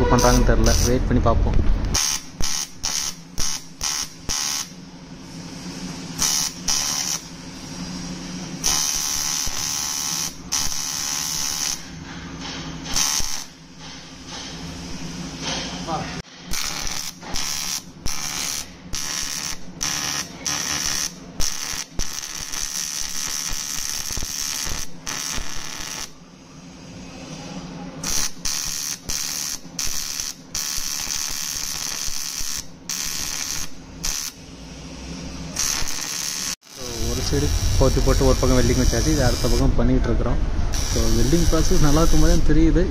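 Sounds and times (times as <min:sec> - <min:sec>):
arc welding crackling buzz: 0:00.0 - 0:01.0, 0:01.8 - 0:12.0, 0:12.8 - 0:26.2, 0:28.0 - 0:34.5, 0:35.3 - 0:39.7, 0:40.7 - 0:42.4
steady hum: 0:00.0 - 0:42.9.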